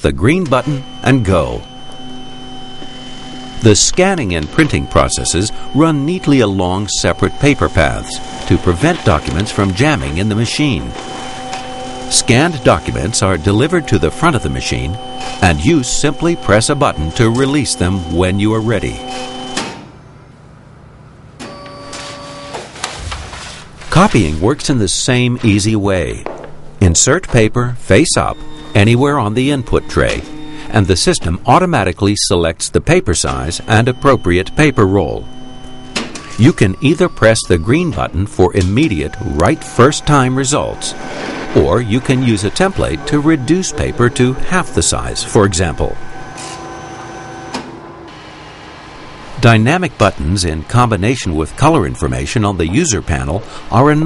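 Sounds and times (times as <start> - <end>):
printer whirring hum: 0.0 - 54.0
scanner clicks: 0.2 - 19.8, 33.1 - 47.8
scanner feed motor whine: 0.2 - 19.8, 27.9 - 31.6, 33.2 - 54.0.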